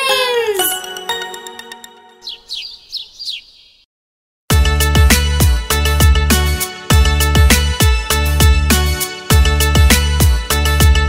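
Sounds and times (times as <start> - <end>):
jingle: 0.0 - 2.2
cartoon bird chirps: 2.2 - 3.8.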